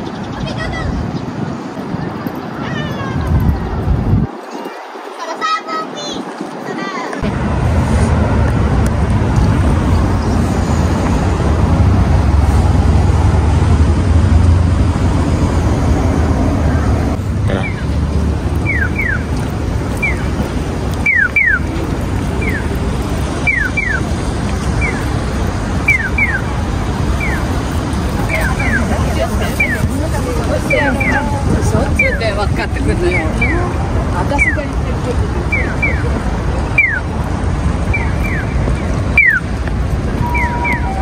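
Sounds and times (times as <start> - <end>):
traffic rumble: 0.0 - 41.0
wind on microphone: 0.0 - 41.0
crossing signal electronic chirps: 18.6 - 19.3, 20.0 - 20.3, 21.0 - 21.7, 22.4 - 22.7, 23.4 - 24.1, 25.8 - 26.5, 27.1 - 27.5, 29.6 - 29.9, 35.4 - 36.1, 36.7 - 37.1, 37.9 - 39.5, 40.2 - 41.0.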